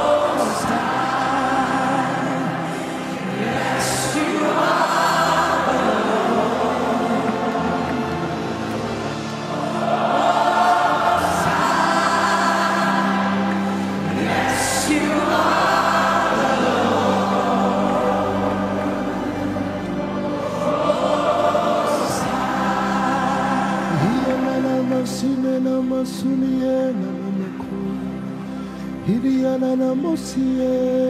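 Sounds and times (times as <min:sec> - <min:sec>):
choir singing gospel music: 0:00.0 - 0:31.0.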